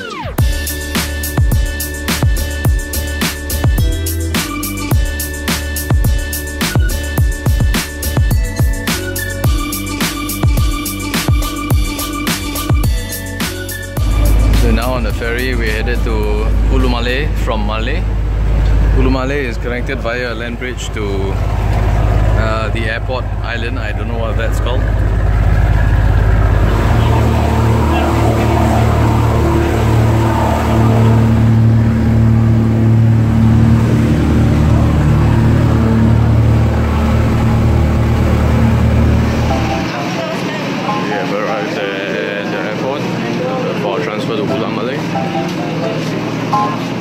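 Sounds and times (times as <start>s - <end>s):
vehicle engine droning: 0.0s - 47.0s
steady deep rumble: 13.9s - 40.0s
person talking: 14.1s - 18.1s.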